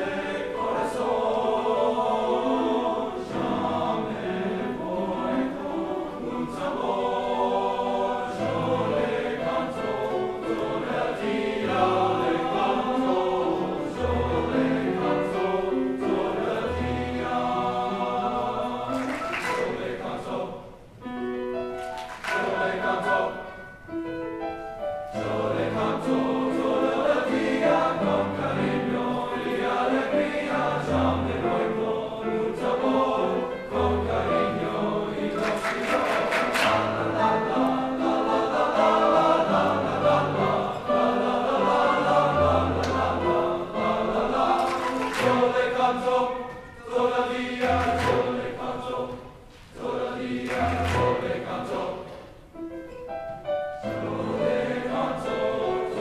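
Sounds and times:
men's choir singing: 0.0s - 20.9s, 21.8s - 23.8s, 25.1s - 52.4s, 53.8s - 56.0s
piano accompaniment: 0.0s - 56.0s.

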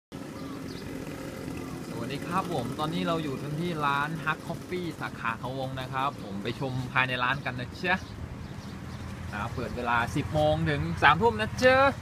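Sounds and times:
road traffic hum: 0.1s - 12.0s.

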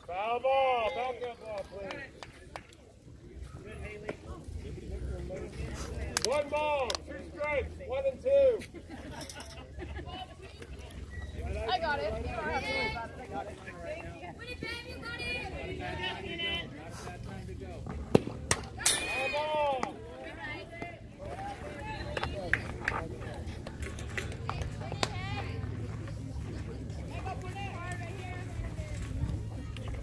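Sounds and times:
people shouting: 18.8s - 19.9s.

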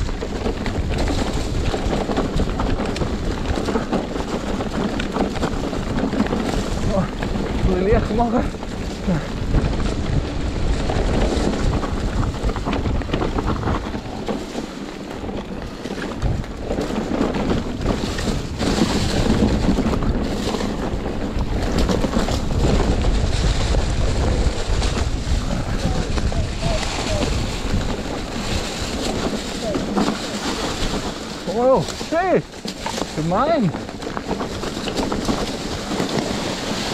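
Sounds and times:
bike rattling over rough ground: 0.0s - 36.9s
bike tyres rolling over dry leaves: 0.0s - 36.9s
wind buffeting microphone: 0.0s - 36.9s.

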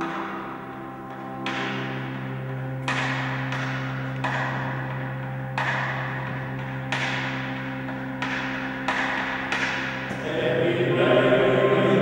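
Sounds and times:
electric keyboard chords: 0.0s - 12.0s
male choir singing: 10.1s - 12.0s.

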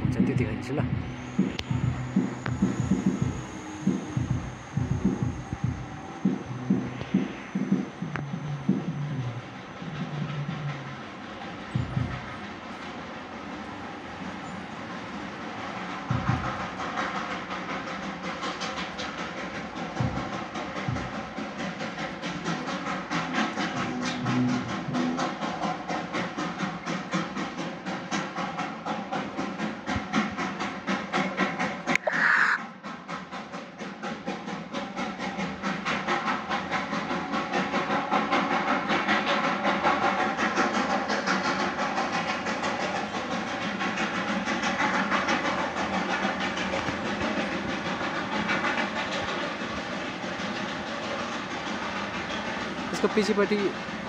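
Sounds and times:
steam locomotive chuffing: 0.0s - 54.0s.

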